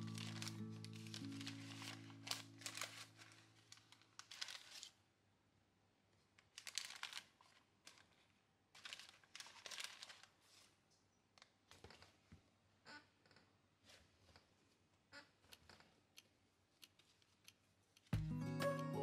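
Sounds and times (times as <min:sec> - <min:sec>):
music track: 0:00.0 - 0:03.2, 0:18.2 - 0:19.0
baking paper crinkling: 0:00.0 - 0:05.1, 0:06.4 - 0:12.2.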